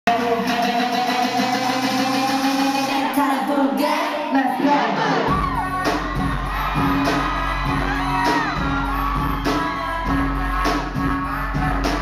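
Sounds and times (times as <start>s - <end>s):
live concert music over pa: 0.1s - 12.0s.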